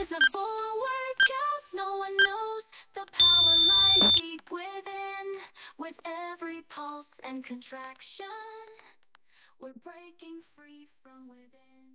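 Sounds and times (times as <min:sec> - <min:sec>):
electronic timer beep: 0:03.2 - 0:04.2.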